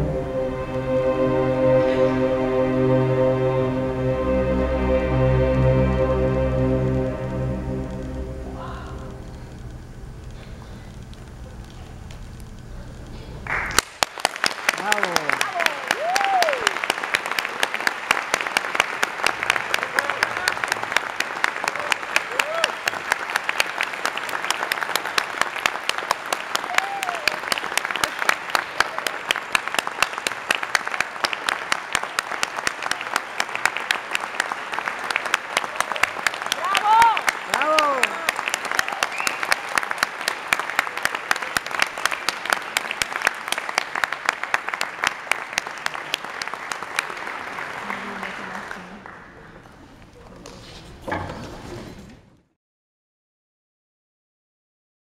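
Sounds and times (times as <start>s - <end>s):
people cheering: 8.5s - 9.2s, 14.6s - 49.0s
audience applauding: 13.4s - 50.1s.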